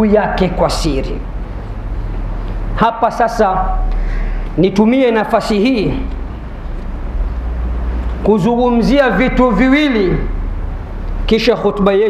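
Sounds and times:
low electrical hum: 0.0s - 12.0s
microphone hiss: 0.0s - 12.0s.

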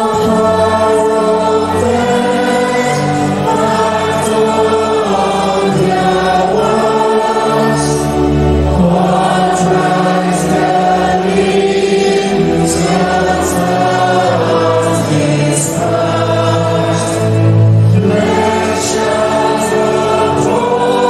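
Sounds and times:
mixed choir singing in harmony: 0.0s - 21.0s.

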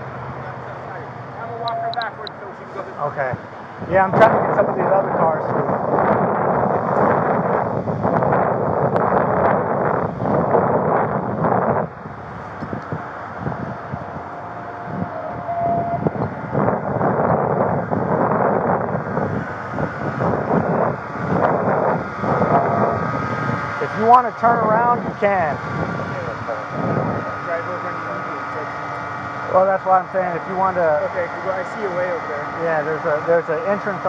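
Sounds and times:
road traffic passing: 0.0s - 34.0s
wind rumbling on microphone: 0.0s - 34.0s
microphone handling noise: 3.3s - 23.8s.

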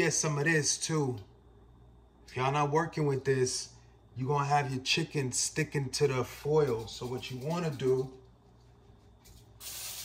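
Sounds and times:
aerosol spray hissing: 9.6s - 10.0s.

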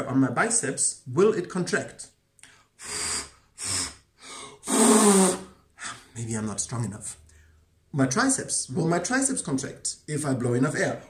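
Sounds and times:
man blowing puffs of air: 2.4s - 6.0s.

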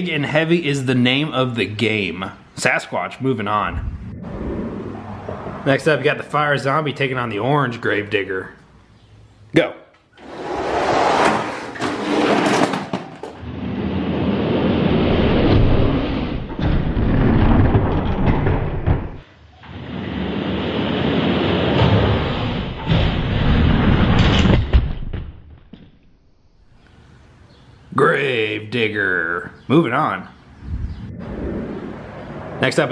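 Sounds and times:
toy trucks rolling on plastic track: 10.2s - 13.4s.

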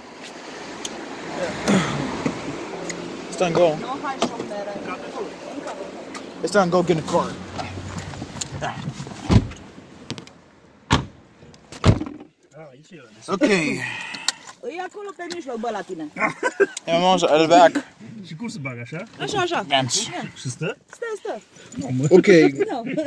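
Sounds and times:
car doors shutting: 1.4s - 2.6s, 7.5s - 12.3s.

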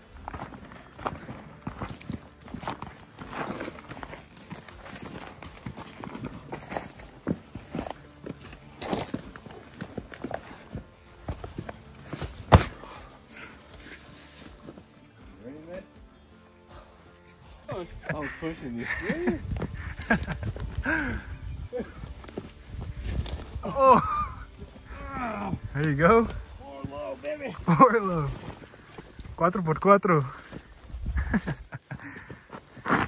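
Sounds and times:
footsteps on loose rock and gravel: 0.0s - 15.0s, 17.8s - 33.0s.

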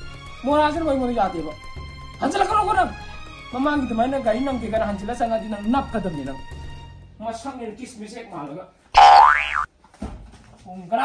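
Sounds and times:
comedic pitch sweep tone: 9.0s - 9.7s.

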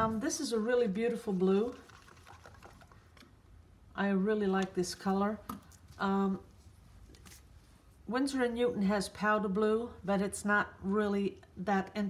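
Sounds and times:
stir stick clicking in plastic cup: 1.7s - 3.4s.

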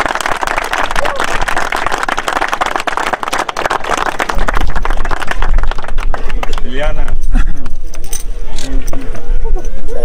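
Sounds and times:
people talking: 8.6s - 10.0s.

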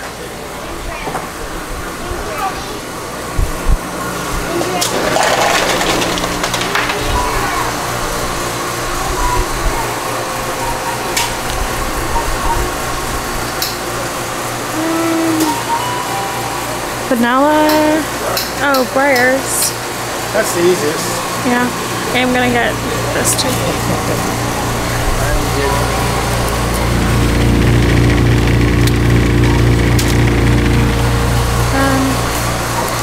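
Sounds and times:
steady low hum: 6.0s - 33.0s
faint voices: 6.6s - 33.0s
music: 9.1s - 13.0s, 15.3s - 17.1s.

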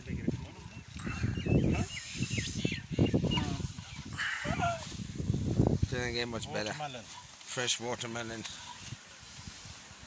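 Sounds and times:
birds chirping: 0.0s - 4.8s, 6.1s - 9.6s.

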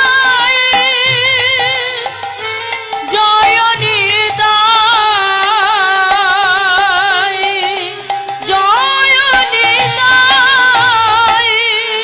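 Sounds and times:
devotional singing with vibrato: 0.0s - 12.0s
harmonium held tone: 0.0s - 12.0s.

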